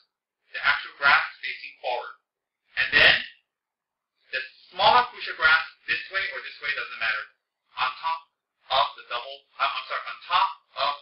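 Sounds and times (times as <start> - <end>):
man talking: 0.6 - 3.4, 4.3 - 11.0.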